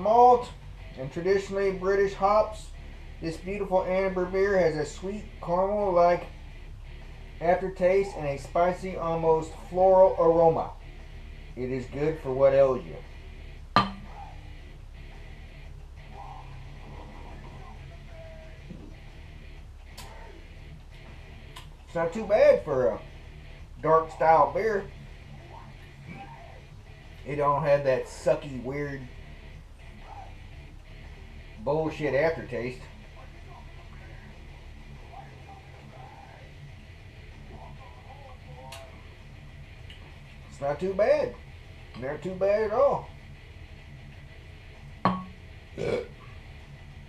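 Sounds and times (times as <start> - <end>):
low room hum: 0.0 - 47.0
glass bottle knocking: 13.8 - 14.0, 45.1 - 45.4.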